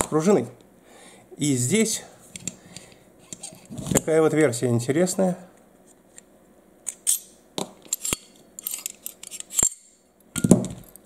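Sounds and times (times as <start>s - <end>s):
metal pistol parts clicking: 6.9s - 11.0s.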